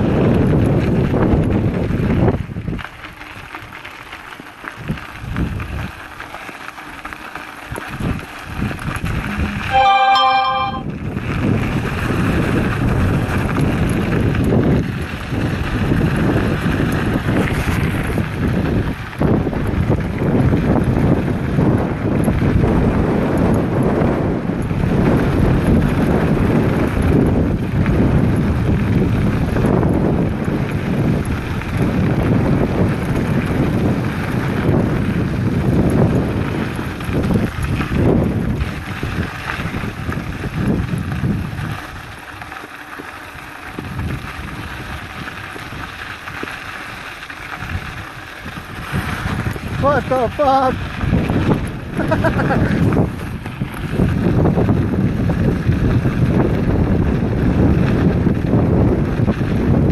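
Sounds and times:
wind buffeting microphone: 0.0s - 3.8s, 4.6s - 6.3s, 6.9s - 9.8s, 10.9s - 59.9s
tyres rumbling on gravel: 0.0s - 9.7s, 10.9s - 59.9s.

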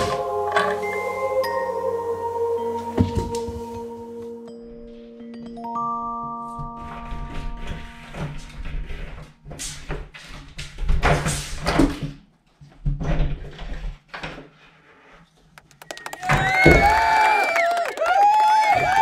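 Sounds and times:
chime-like music notes: 0.0s - 8.6s.

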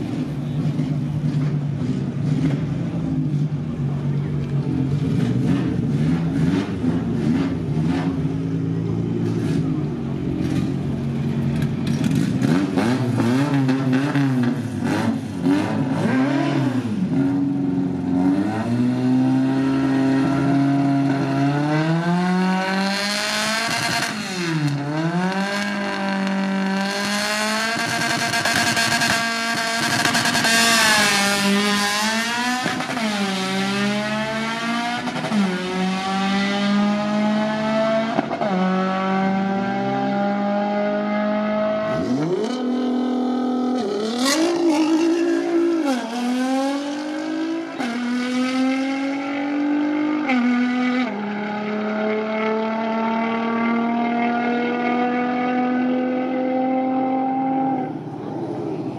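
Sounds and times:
drag racing engines revving: 0.0s - 58.9s.

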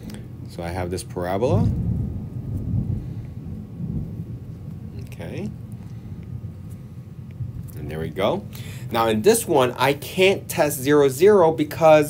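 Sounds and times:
low uneven rumble: 0.0s - 12.0s.

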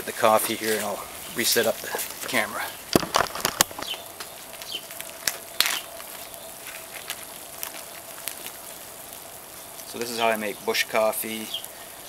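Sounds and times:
fire hissing: 0.0s - 12.0s
wood fire crackling: 0.0s - 12.0s.

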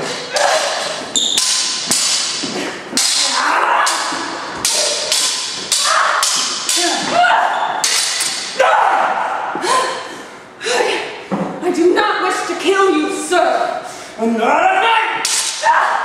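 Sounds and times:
swords clashing: 0.0s - 8.8s, 15.2s - 16.0s.

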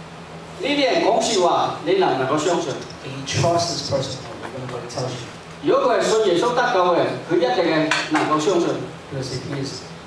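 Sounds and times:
man speaking: 0.6s - 9.9s.

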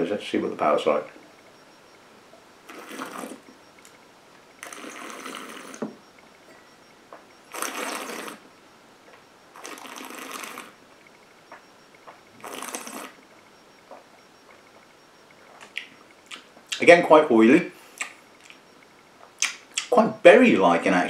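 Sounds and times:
person slurping liquid: 2.7s - 3.4s, 4.6s - 5.8s, 7.5s - 8.4s, 9.6s - 10.8s, 12.4s - 13.2s.

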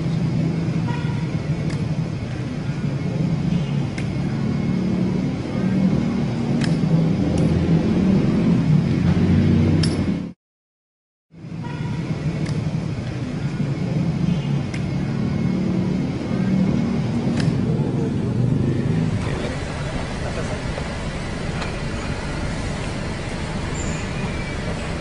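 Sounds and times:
low rumble of traffic: 0.0s - 10.4s, 11.3s - 25.0s.

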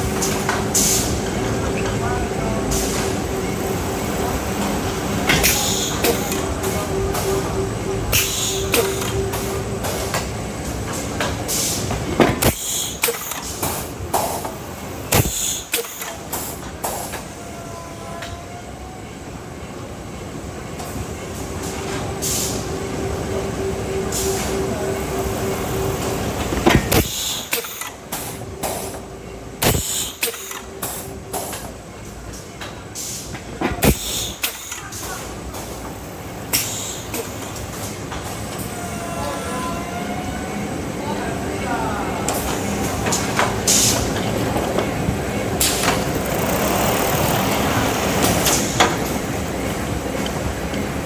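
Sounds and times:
machine humming tone: 0.0s - 11.0s
conveyor mechanical rumble: 0.0s - 38.9s, 39.6s - 51.0s.

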